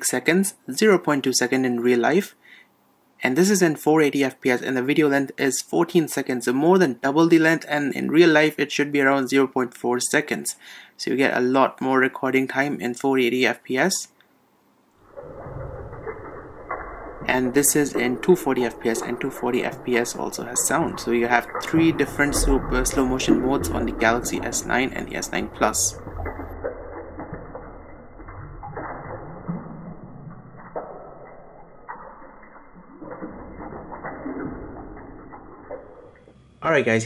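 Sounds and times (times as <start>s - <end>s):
slowed-down water rushing rumble: 15.0s - 36.3s.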